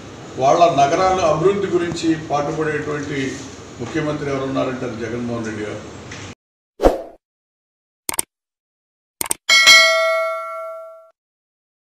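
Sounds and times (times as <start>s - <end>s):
notification bell chime: 9.5s - 11.1s.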